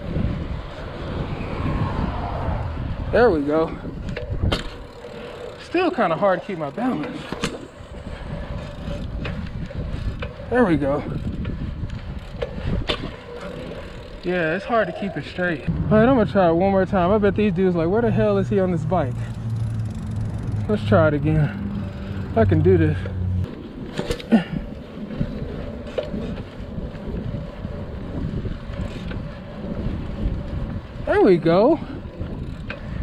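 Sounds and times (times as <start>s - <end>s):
wind on microphone: 0.0s - 5.3s, 7.7s - 14.2s, 24.3s - 33.0s
bicycle tyres on asphalt: 0.0s - 33.0s.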